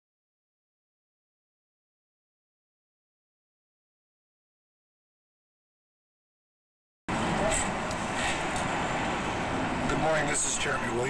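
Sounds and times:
street traffic hum: 7.1 - 11.0.

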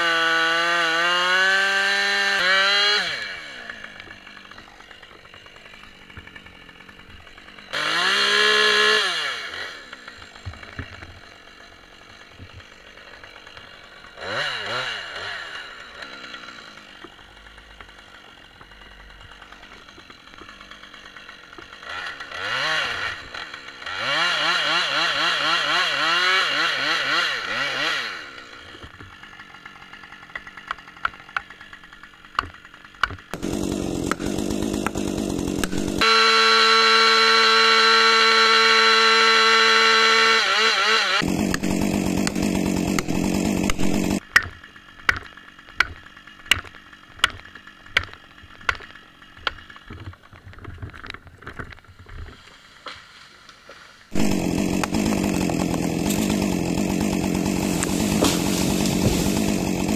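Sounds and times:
chainsaw revving: 0.0 - 50.2, 53.7 - 59.9.

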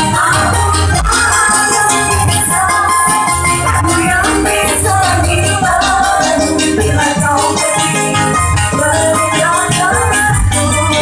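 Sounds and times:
keyboard melody: 0.0 - 11.0
live band music: 0.0 - 11.0.

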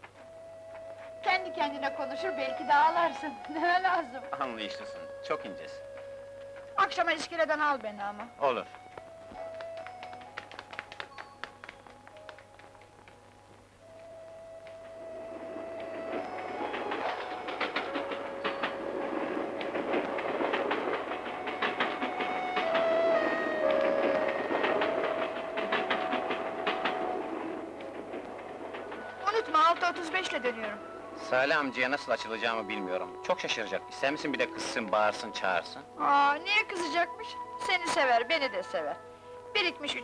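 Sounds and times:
train wheels rumbling on bridge: 14.0 - 35.8.

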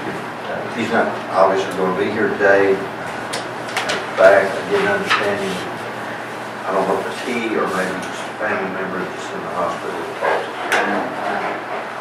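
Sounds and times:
man speaking indistinctly: 0.4 - 3.0, 4.0 - 5.8, 6.6 - 11.7.

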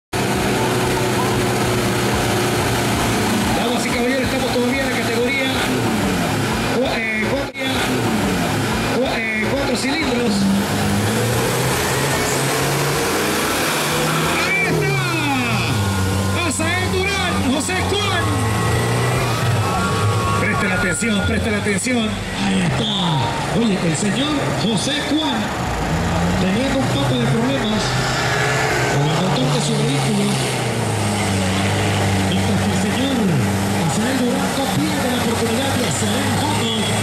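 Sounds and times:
truck engines revving: 0.0 - 37.0
voices talking: 0.2 - 12.8, 13.9 - 28.2.

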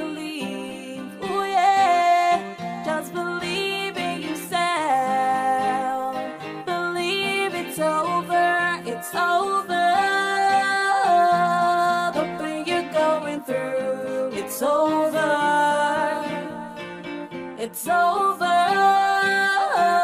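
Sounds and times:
guitar accompaniment: 0.0 - 20.0
person singing slow melody: 0.0 - 20.0.

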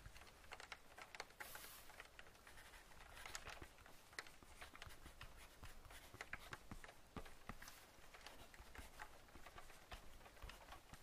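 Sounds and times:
computer keyboard typing: 0.0 - 11.0.

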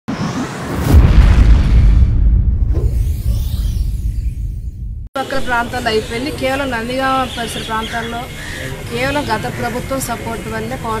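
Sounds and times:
whoosh landing in deep boom: 0.1 - 5.1.

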